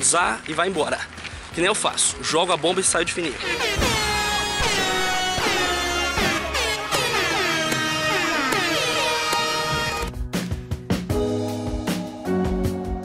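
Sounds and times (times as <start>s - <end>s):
air horn blasts sliding down: 3.5s - 10.1s.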